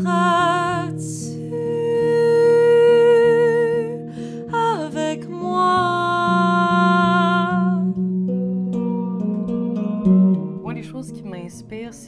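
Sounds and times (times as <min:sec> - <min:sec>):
woman singing with vibrato: 0:00.0 - 0:08.0
clean electric guitar chords: 0:00.0 - 0:12.0.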